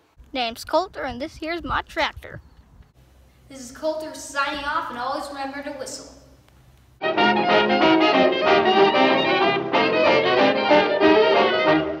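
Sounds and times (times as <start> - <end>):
brass music: 7.0 - 12.0.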